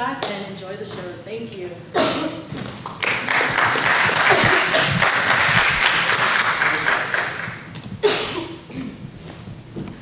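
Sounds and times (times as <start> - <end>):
audience applauding: 2.7 - 7.7.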